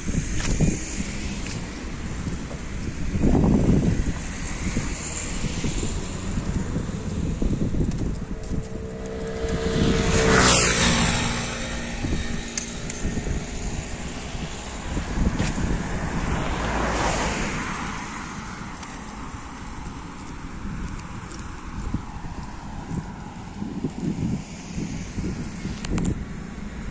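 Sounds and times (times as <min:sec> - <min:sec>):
vehicle passing by: 0:00.0 - 0:26.9
wind rumbling on microphone: 0:00.0 - 0:26.9.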